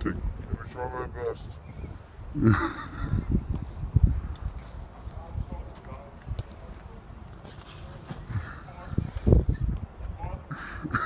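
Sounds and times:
faint voices: 4.8s - 11.0s.

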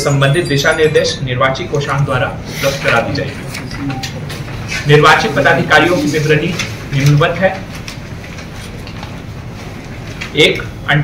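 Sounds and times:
room noise with low hum: 0.0s - 11.0s.

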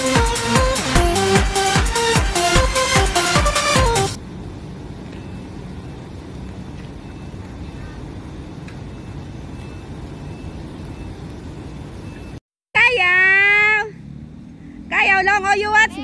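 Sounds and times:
low outdoor rumble: 4.2s - 16.0s.

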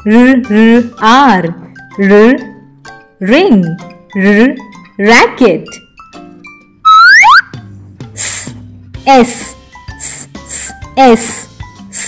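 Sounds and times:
quiet background music: 0.0s - 12.0s
rising whistle sound effect: 6.9s - 7.5s.

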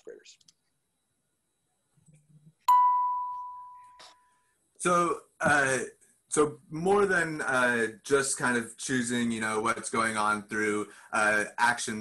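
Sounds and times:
bell-like chime: 2.7s - 4.0s.

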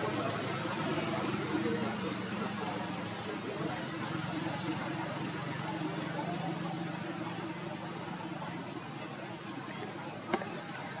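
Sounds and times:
outdoor hiss: 9.4s - 11.0s
insects buzzing: 10.0s - 11.0s.

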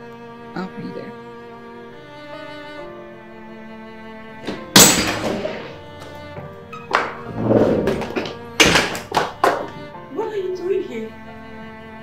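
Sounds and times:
soft background music: 0.0s - 12.0s
sharp thuds: 4.5s - 9.9s.

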